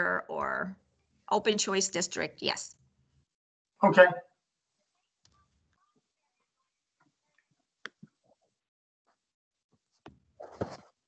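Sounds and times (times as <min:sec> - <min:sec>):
person saying ok: 0:03.8 - 0:04.2.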